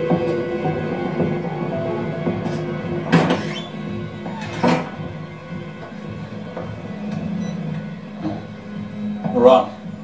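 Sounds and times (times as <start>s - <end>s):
low held drone score: 0.0s - 10.0s.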